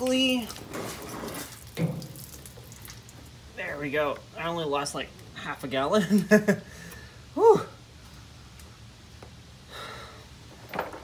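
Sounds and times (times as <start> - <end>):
gasoline pouring and splashing: 0.5 - 3.4.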